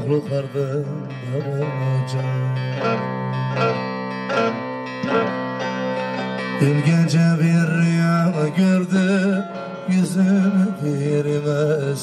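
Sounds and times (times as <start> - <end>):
long-necked lute playing: 0.0 - 8.5
person singing folk song: 0.0 - 12.0.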